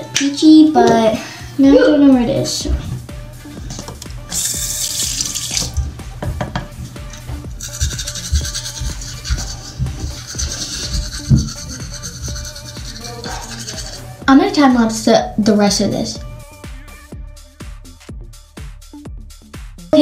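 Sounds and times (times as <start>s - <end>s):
faint background music: 0.0s - 17.5s, 19.8s - 20.0s
tap running into sink: 3.7s - 7.2s.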